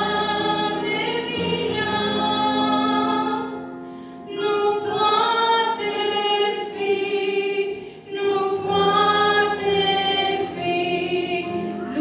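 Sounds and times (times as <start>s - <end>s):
piano accompaniment: 0.0s - 12.0s
woman singing into a microphone: 4.3s - 12.0s.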